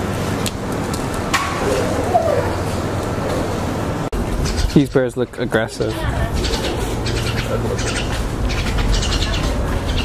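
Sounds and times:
steady low rumble: 0.0 - 10.0
small birds chattering: 4.3 - 10.0.

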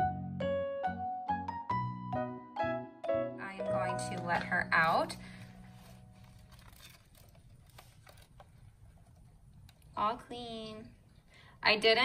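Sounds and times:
plastic ball clicks and rustles: 5.8 - 10.0.

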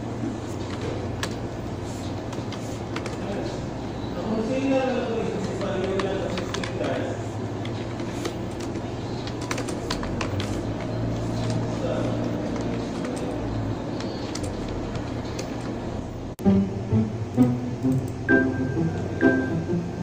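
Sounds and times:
faint voices: 10.5 - 14.7.

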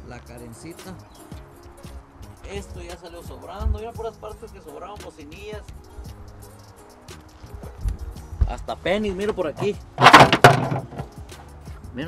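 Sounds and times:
background music: 0.0 - 12.0
plastic pieces clattering: 10.0 - 11.0.

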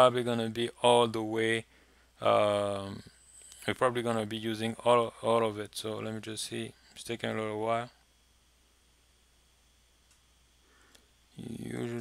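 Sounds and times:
microphone hiss and hum: 0.0 - 12.0
person speaking: 11.4 - 12.0.

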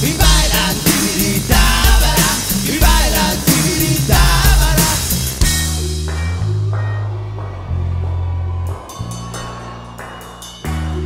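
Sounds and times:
drum and cymbal strokes: 0.0 - 7.7
instrumental rock band playing: 0.0 - 11.0.

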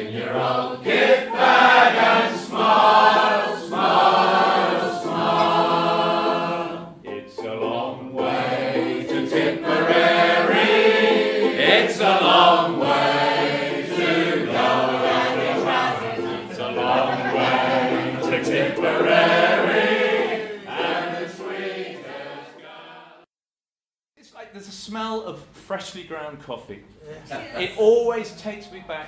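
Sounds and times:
group singing a chorus: 0.0 - 23.3.

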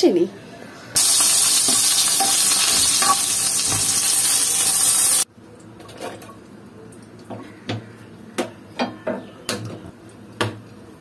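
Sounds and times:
vegetables sizzling in hot oil: 1.0 - 5.3.

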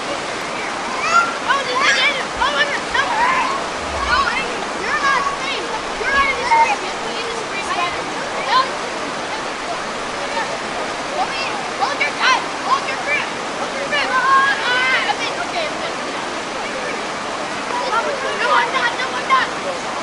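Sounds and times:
creek water rushing over rocks: 0.0 - 20.0.

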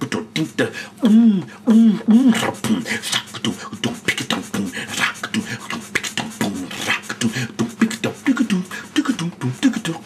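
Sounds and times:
man beatboxing: 0.0 - 10.0.

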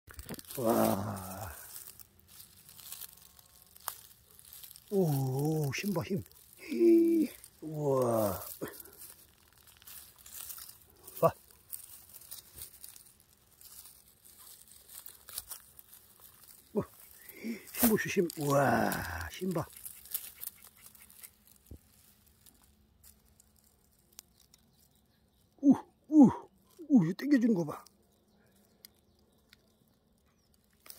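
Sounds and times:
dry grass rustling: 0.1 - 25.6, 26.5 - 30.9
man's short exclamation: 0.6 - 1.7, 4.9 - 8.8, 16.8 - 19.6, 25.6 - 27.0.

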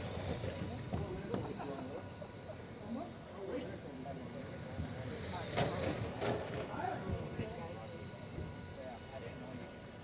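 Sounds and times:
radio-controlled cars passing: 5.0 - 6.7.

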